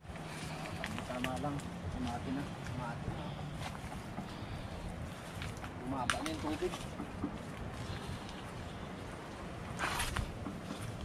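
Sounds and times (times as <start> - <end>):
wind rumbling on microphone: 0.0 - 11.0
branches snapping and rustling: 5.2 - 8.5.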